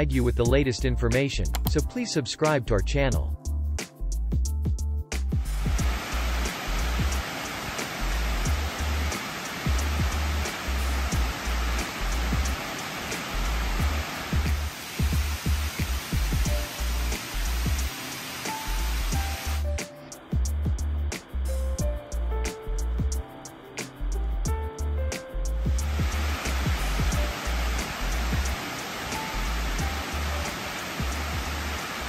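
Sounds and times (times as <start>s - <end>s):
background music with beat: 0.0s - 32.0s
water rushing over spillway: 5.6s - 19.7s, 25.7s - 32.0s.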